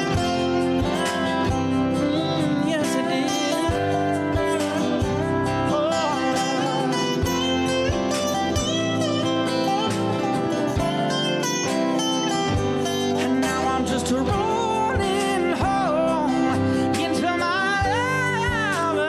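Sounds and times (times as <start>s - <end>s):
acoustic guitar: 0.0s - 19.0s
cajon: 0.0s - 19.0s
keyboard: 0.0s - 19.0s
lap steel guitar: 0.0s - 19.0s.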